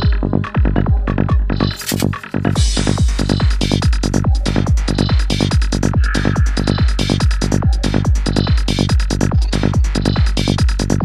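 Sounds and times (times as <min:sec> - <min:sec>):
bass notes: 0:00.0 - 0:11.0
hi-hats: 0:00.0 - 0:11.0
kick drum: 0:00.0 - 0:11.0.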